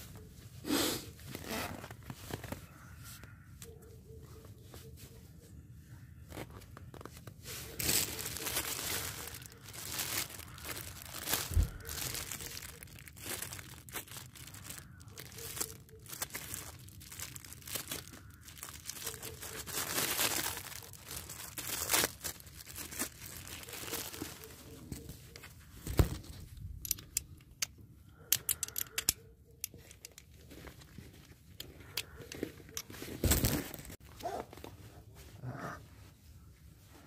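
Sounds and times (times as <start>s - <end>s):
plastic bag crinkling and tearing: 6.3s - 26.4s, 32.2s - 34.0s.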